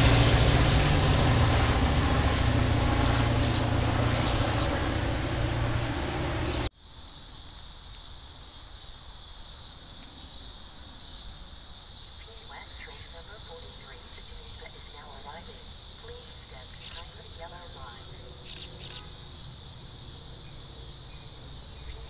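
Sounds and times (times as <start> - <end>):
distant voices: 0.0 - 6.7, 12.3 - 22.0
insects buzzing: 0.0 - 22.0.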